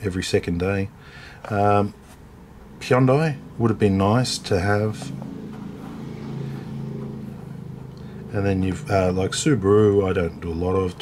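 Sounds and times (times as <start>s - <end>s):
steady layered low hum: 1.4s - 11.0s.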